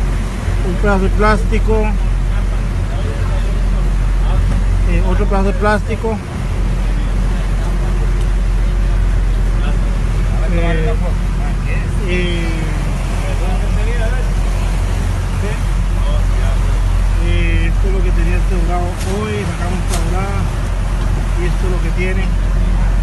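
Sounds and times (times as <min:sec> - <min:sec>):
boat engine droning: 0:00.0 - 0:23.0.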